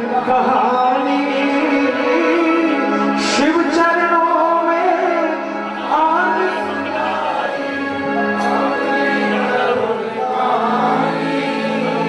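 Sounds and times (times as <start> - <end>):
steady held notes: 5.4 - 12.0
group singing devotional song: 5.7 - 12.0.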